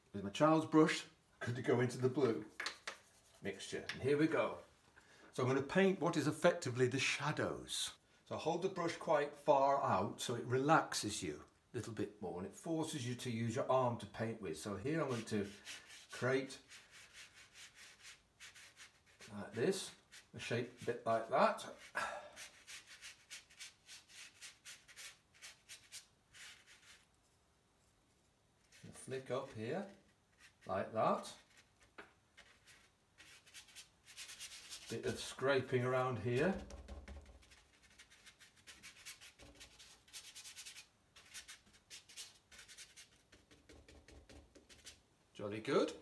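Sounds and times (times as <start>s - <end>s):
paintbrush scrubbing on paper: 2.8s - 3.6s, 14.9s - 27.2s, 28.6s - 45.0s.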